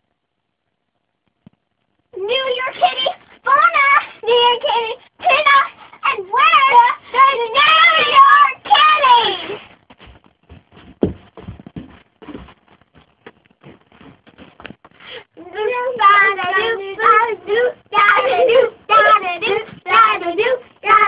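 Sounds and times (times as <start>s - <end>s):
girls singing together: 2.2s - 9.4s, 15.3s - 21.0s
knocks and thumps: 9.7s - 15.0s.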